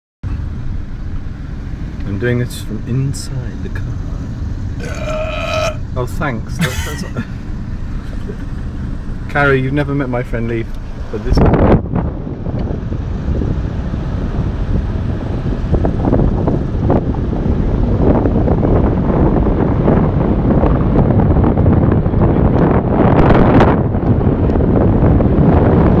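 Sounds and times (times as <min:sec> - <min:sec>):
road noise: 0:00.2 - 0:26.0
wind rushing over microphone: 0:00.3 - 0:26.0.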